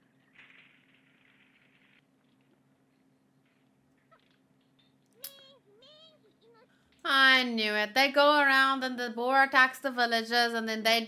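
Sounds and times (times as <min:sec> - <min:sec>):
low electrical hum: 0:00.0 - 0:11.0
high-pitched vocal calls: 0:05.2 - 0:06.7.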